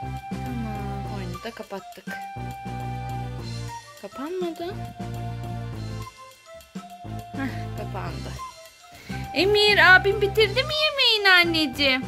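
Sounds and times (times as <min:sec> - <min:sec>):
music with steady bass line: 0:04.7 - 0:08.5.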